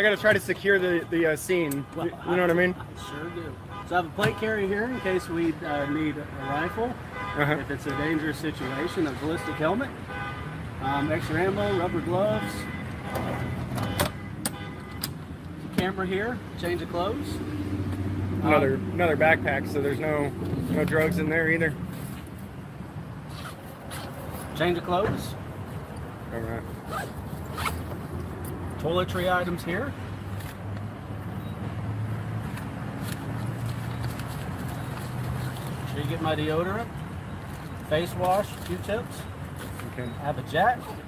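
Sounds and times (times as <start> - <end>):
rustling in a backpack: 26.8 - 27.9.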